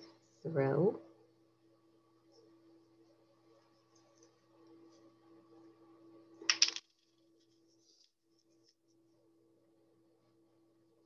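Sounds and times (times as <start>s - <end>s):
sharp clicks of craft pieces: 6.5s - 6.9s.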